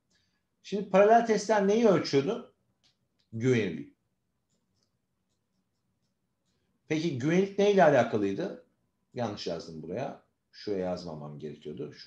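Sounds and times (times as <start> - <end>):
stylus scratching on tablet screen: 4.3 - 6.9.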